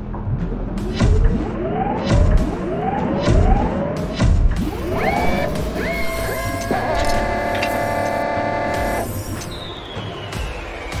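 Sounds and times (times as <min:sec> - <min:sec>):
synthesized rising whines: 0:04.6 - 0:11.0
held synthesized chord: 0:04.9 - 0:09.3.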